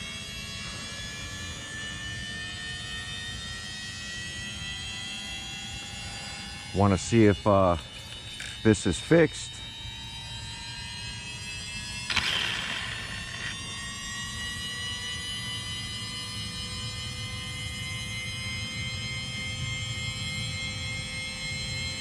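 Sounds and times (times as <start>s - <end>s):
high electric motor whine: 0.0s - 22.0s.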